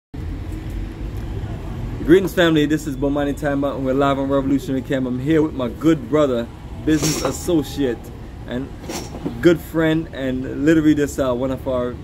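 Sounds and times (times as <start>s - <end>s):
road traffic rumble: 0.2s - 12.0s.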